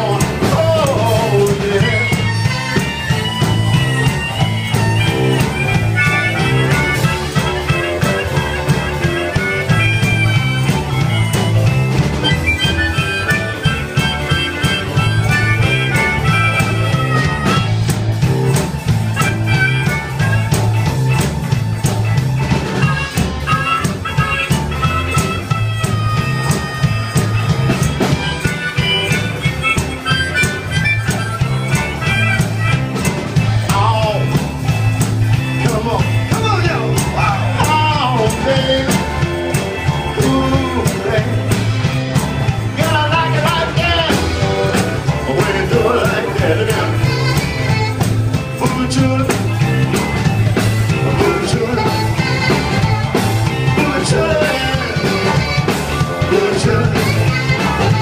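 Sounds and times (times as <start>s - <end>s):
blues band playing: 0.0s - 58.0s
harmonica solo: 0.0s - 58.0s.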